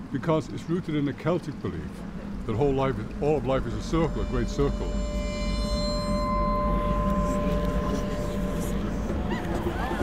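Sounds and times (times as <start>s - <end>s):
low steady rumble: 0.0s - 10.0s
bell-like ringing tones: 3.3s - 10.0s.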